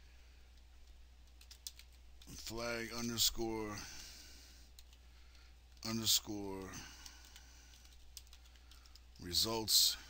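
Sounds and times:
low electrical hum: 0.0s - 10.0s
computer keyboard typing: 0.8s - 2.3s, 4.7s - 5.0s, 5.8s - 9.2s.

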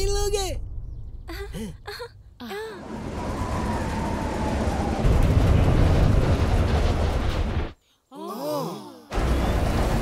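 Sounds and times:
rocket rushing rumble: 2.9s - 7.8s.

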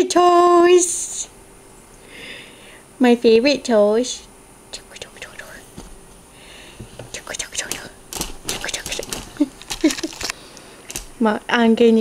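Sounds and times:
person whispering: 4.7s - 5.7s, 7.1s - 9.2s
handling clicks and rustles: 5.7s - 11.2s.

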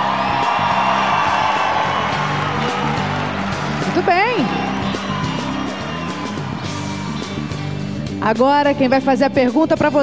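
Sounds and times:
audience cheering and applauding: 0.0s - 8.2s
background music: 0.0s - 10.0s.

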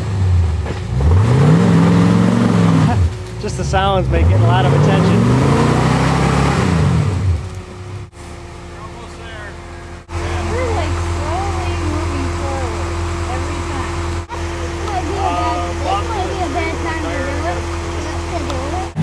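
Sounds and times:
engine revving: 0.0s - 19.0s
low engine drone: 0.0s - 19.0s
onlookers talking: 2.8s - 5.7s, 8.6s - 19.0s.

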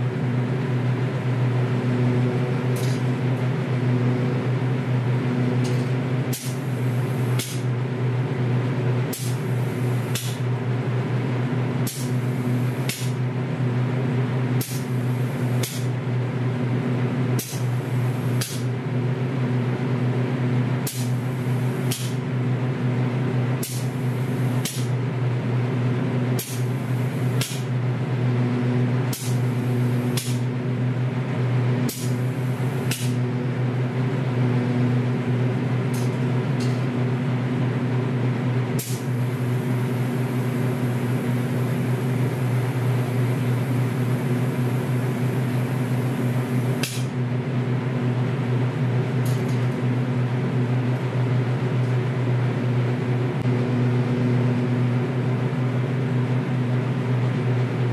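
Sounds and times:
extraction fan humming: 0.0s - 57.9s.

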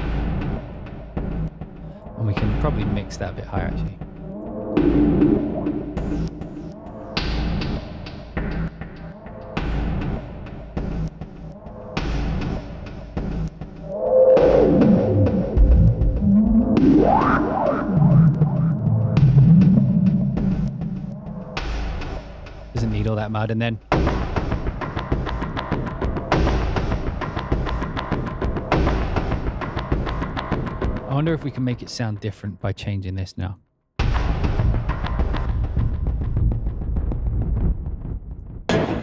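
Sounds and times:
swooping pitch sweep: 4.2s - 7.2s, 13.8s - 21.0s
low gritty bass: 14.8s - 21.1s
heavy percussive hits: 38.7s - 39.0s.

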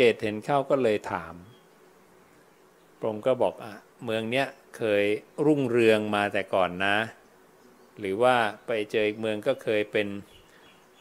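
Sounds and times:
man speaking: 0.0s - 1.5s, 3.0s - 7.2s, 8.0s - 10.3s
faint room hiss: 0.0s - 11.0s.

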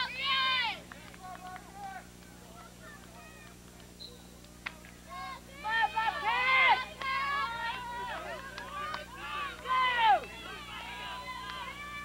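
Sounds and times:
loud drawn-out shout: 5.1s - 12.0s.

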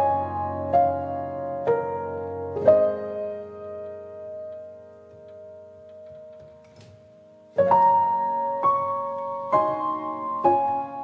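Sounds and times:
slow relaxation piano music: 0.0s - 11.0s.

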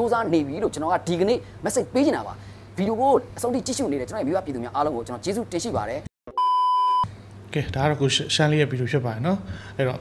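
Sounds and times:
censor bleep: 6.3s - 7.1s.

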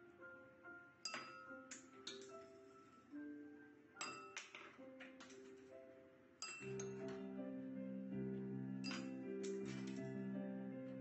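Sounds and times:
glassware clinking: 1.0s - 2.4s, 4.0s - 5.4s, 6.4s - 7.2s, 8.8s - 10.0s
simple tune held notes: 6.4s - 11.0s.

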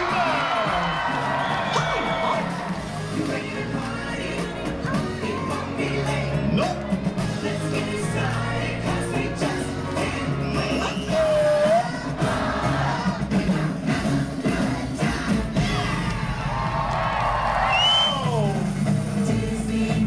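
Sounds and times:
crowd cheering: 0.0s - 7.2s, 15.6s - 19.1s
live music with singing: 0.0s - 20.0s.

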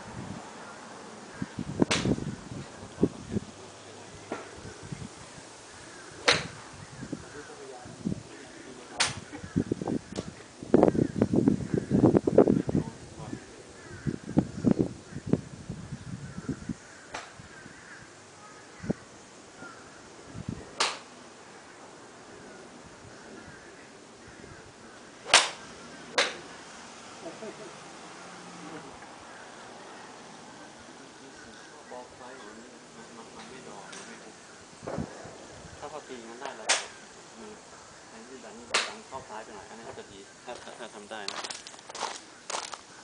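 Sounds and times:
golf club striking ball: 1.8s - 2.2s, 6.2s - 6.6s, 9.0s - 9.2s, 20.8s - 21.2s, 25.2s - 26.5s, 36.6s - 36.9s, 38.7s - 39.0s.

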